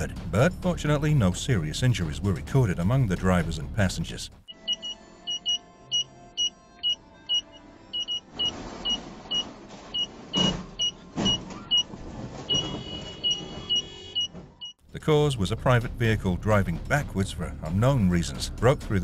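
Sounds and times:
electronic parking sensor beeps: 0:04.5 - 0:11.9, 0:12.5 - 0:14.8
car engine and tyre noise: 0:05.4 - 0:18.2.

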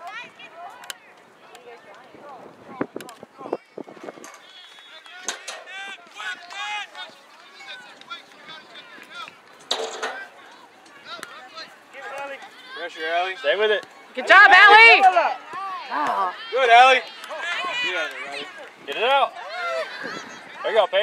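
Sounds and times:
loud shout: 0:14.2 - 0:18.6, 0:19.2 - 0:21.0.

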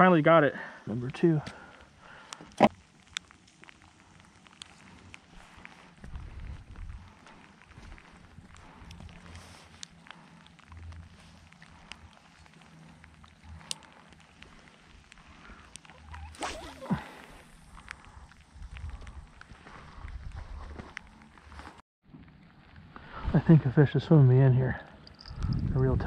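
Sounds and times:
fishing tackle clicks and rustles: 0:02.4 - 0:20.2, 0:25.0 - 0:25.8
low rumbling wind gusts: 0:04.8 - 0:09.5, 0:17.4 - 0:21.6, 0:22.8 - 0:26.0.

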